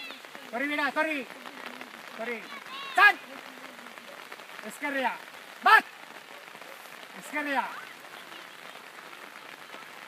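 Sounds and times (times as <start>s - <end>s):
light rain falling: 0.0s - 10.0s.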